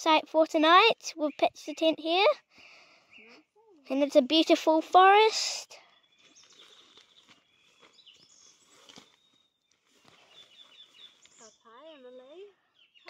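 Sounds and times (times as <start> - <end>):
birds chirping: 0.0 - 4.5, 5.2 - 13.0.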